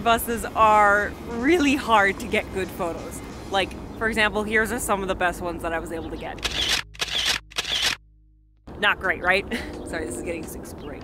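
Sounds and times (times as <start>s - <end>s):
camera shutter snaps: 6.4s - 8.0s.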